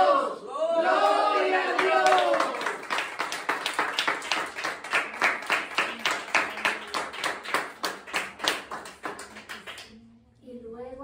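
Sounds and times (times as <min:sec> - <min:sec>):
hands clapping rhythmically: 0:01.0 - 0:10.0.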